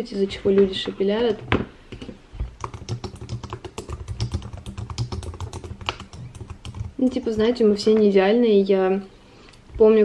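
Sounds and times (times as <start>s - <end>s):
fast typing on keyboard: 2.6s - 7.9s.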